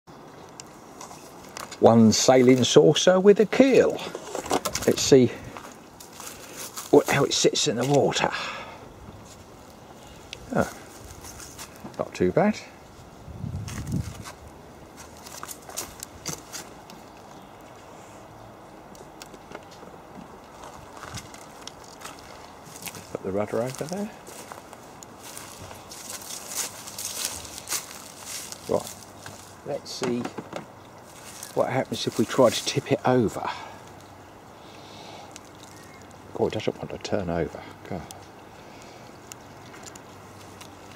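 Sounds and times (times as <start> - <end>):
outdoor background hiss: 0.1 - 40.9
light footsteps: 19.0 - 32.8.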